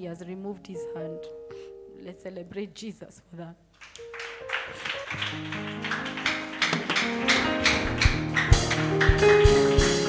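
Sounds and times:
held keyboard chords: 0:04.0 - 0:10.0.

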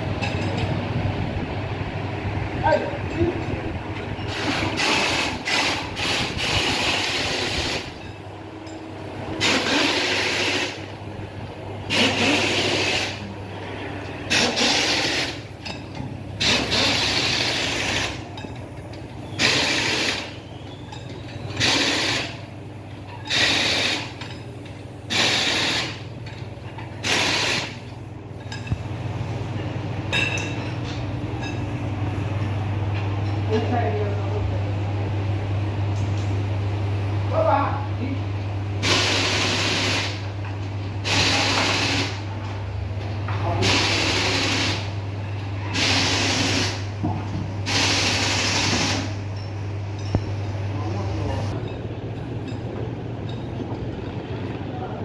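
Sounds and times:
steady low hum: 0:00.0 - 0:55.0
pneumatic impact wrench bursts: 0:04.3 - 0:08.0, 0:09.4 - 0:10.9, 0:11.9 - 0:13.3, 0:14.3 - 0:15.5, 0:16.4 - 0:18.2, 0:19.3 - 0:20.4, 0:21.5 - 0:22.4, 0:23.2 - 0:24.2, 0:25.1 - 0:26.1, 0:27.0 - 0:27.9, 0:38.8 - 0:40.3, 0:41.0 - 0:42.2, 0:43.6 - 0:44.9, 0:45.7 - 0:46.9, 0:47.6 - 0:49.2.

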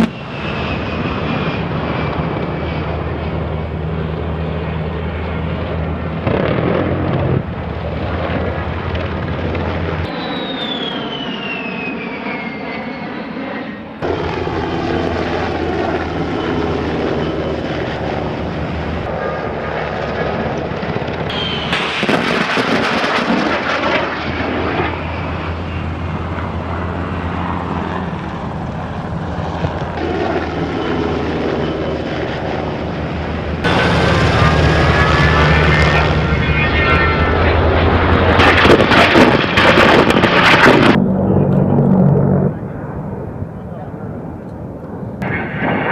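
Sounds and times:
jet engines whining on low pass: 0:00.0 - 0:45.9.

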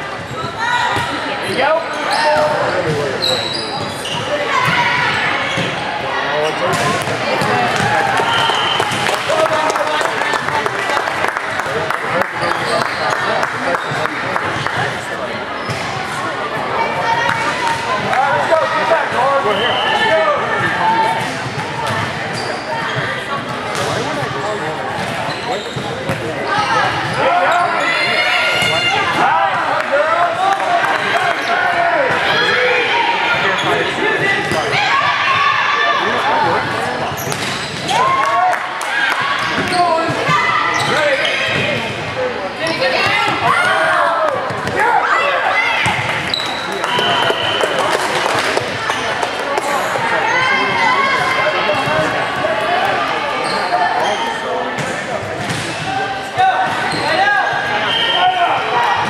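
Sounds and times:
shouts echoing in a hall: 0:00.0 - 0:59.0.

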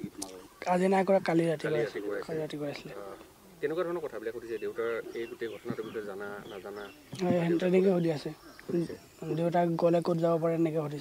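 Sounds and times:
young man talking: 0:00.0 - 0:07.8.

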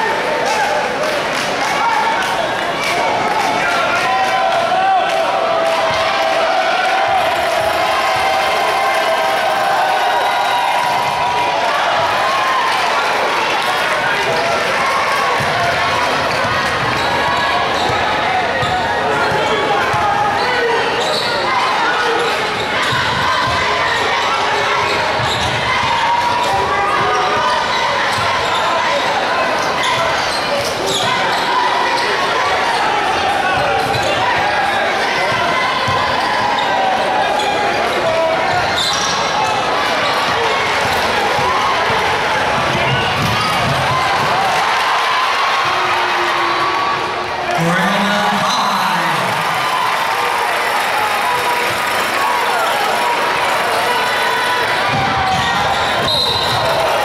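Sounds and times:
crowd chatter and shouting: 0:00.0 - 0:57.0.

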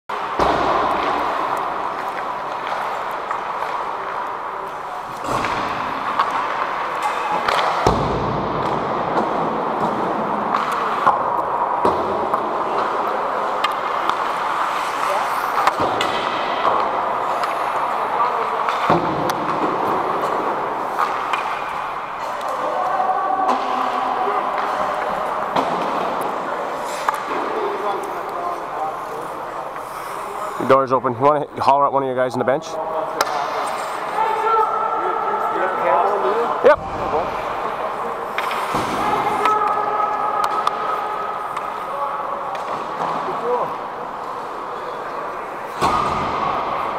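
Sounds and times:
indistinct players' voices: 0:00.1 - 0:46.9
skates on ice: 0:00.2 - 0:07.9, 0:08.7 - 0:30.6, 0:36.0 - 0:46.9
pucks and sticks knocking: 0:00.2 - 0:22.6, 0:23.5 - 0:28.3, 0:36.6 - 0:41.9.

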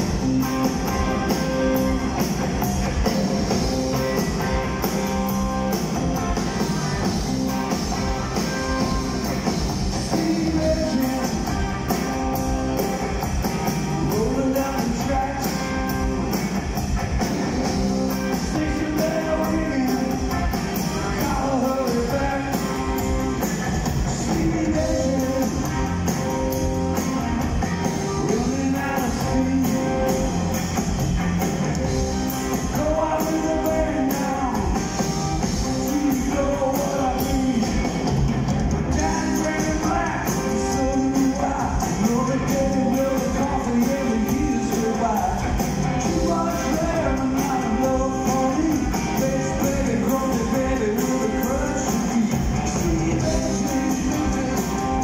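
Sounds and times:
live rock band playing: 0:00.0 - 0:55.0
man singing: 0:07.7 - 0:12.2, 0:14.0 - 0:16.2, 0:17.3 - 0:23.2, 0:24.0 - 0:26.6, 0:28.0 - 0:30.5, 0:31.9 - 0:38.2, 0:38.9 - 0:55.0.

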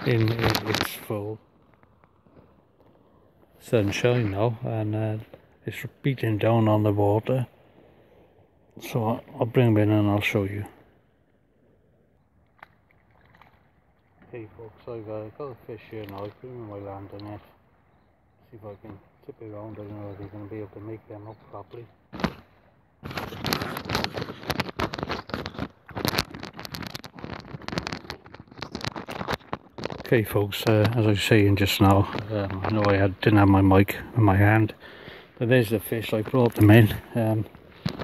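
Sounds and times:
microphone handling noise: 0:00.0 - 0:01.2, 0:22.1 - 0:34.2, 0:36.0 - 0:38.0.

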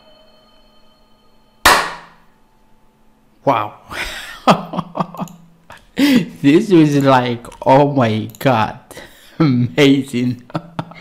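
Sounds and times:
faint held musical tones: 0:00.0 - 0:11.0.

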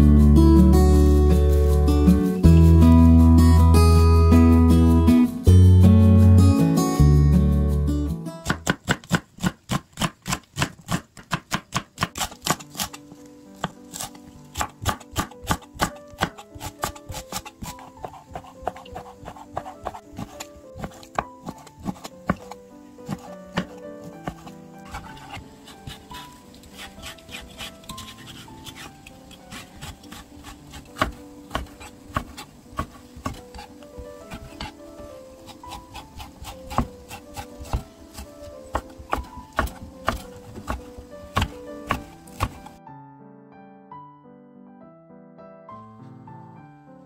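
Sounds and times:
soft background music: 0:00.0 - 0:08.9, 0:11.7 - 0:47.0
knife chopping on cutting board: 0:08.4 - 0:13.0, 0:13.6 - 0:28.9, 0:29.5 - 0:34.8, 0:35.4 - 0:42.8.

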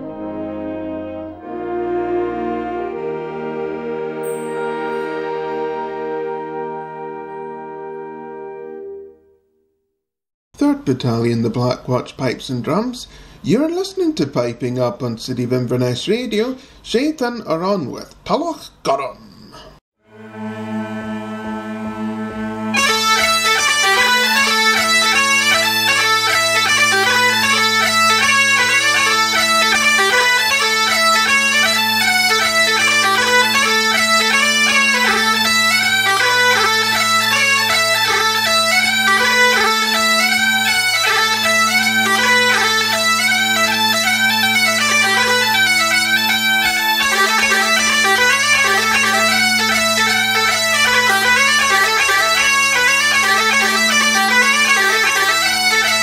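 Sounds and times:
bagpipe playing a tune: 0:00.0 - 0:09.2, 0:20.0 - 0:56.0.

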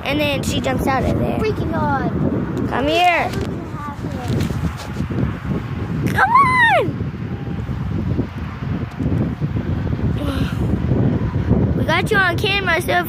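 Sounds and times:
microphone handling noise: 0:00.0 - 0:01.6, 0:02.2 - 0:06.6
wind buffeting microphone: 0:00.0 - 0:13.0.

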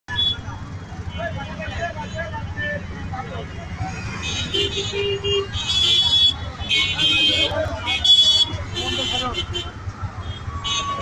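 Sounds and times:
traffic engine rumble: 0:00.1 - 0:11.0
scattered voices: 0:05.4 - 0:11.0.

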